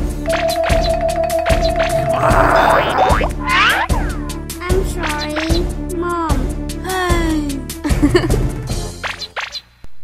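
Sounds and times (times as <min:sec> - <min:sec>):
cartoon background music: 0:00.0 - 0:09.6.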